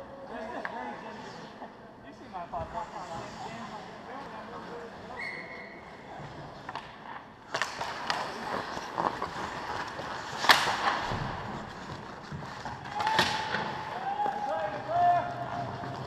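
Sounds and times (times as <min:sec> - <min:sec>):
skates scraping on ice: 0:06.3 - 0:16.0
sharp cracks: 0:10.2 - 0:11.2.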